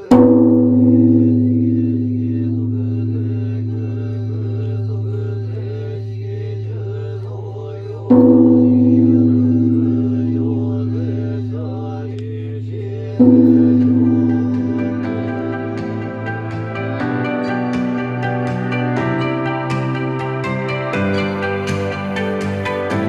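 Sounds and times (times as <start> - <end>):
temple bell ringing: 0.0 - 23.0.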